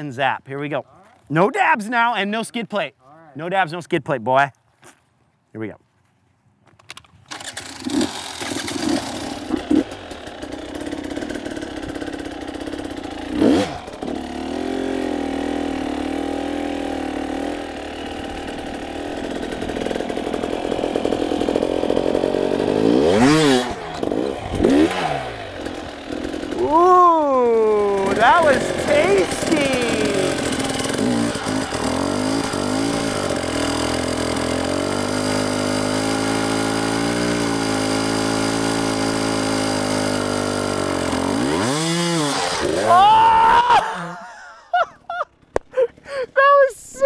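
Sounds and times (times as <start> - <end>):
dirt bike engine revving: 7.3 - 44.5.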